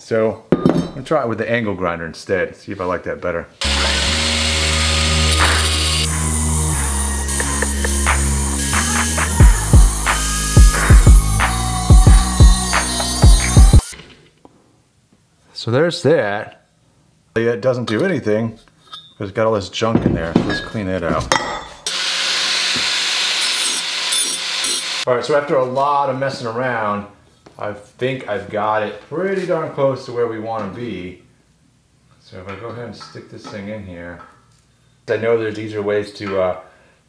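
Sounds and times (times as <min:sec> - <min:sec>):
sustained bass and chords: 0:03.6 - 0:13.8
angle grinder grinding metal: 0:03.6 - 0:14.0, 0:21.8 - 0:25.1
deep kick drum beat: 0:09.4 - 0:13.8.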